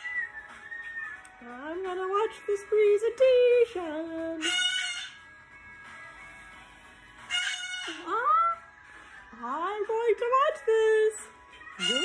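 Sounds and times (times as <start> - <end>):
cockatoo screeching: 0.0 - 1.2, 4.4 - 5.2, 7.3 - 8.1, 11.6 - 12.0.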